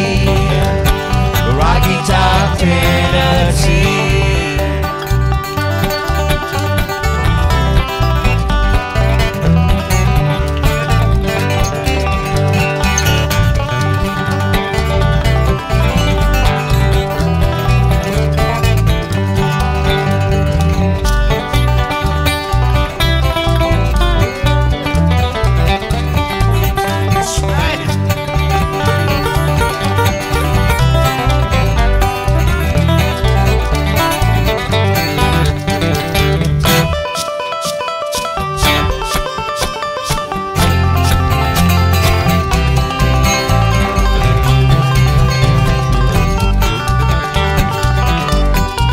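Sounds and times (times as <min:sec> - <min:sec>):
acoustic guitars picking: 0:00.0 - 0:48.9
banjo picking: 0:00.0 - 0:48.9
bluegrass band playing: 0:00.0 - 0:48.9
upright bass: 0:00.0 - 0:48.9.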